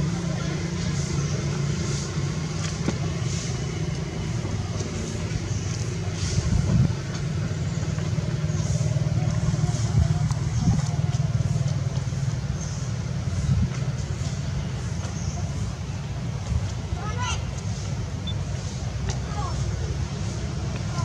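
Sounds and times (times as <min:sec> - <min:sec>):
low motor hum: 0:00.0 - 0:21.0.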